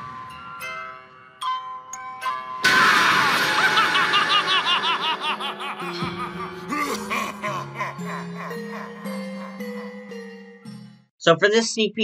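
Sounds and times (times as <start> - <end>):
high-pitched evil cackle: 2.6 - 10.5.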